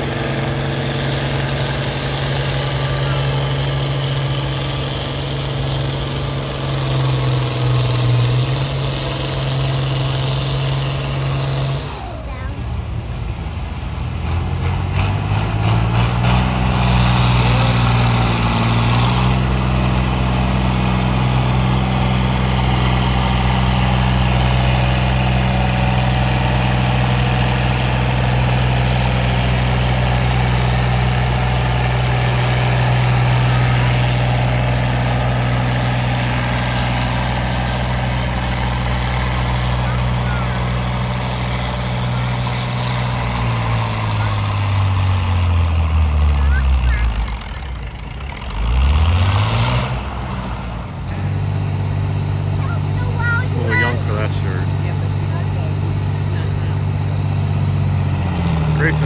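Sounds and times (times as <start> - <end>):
diesel tractor engine under load: 0.0 - 59.0.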